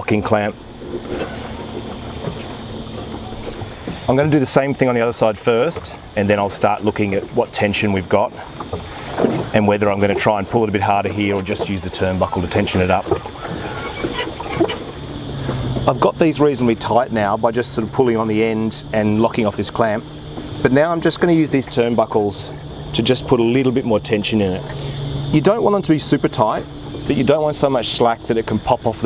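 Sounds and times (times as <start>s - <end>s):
low background rumble: 0.0s - 28.9s
low steady hum: 0.0s - 29.0s.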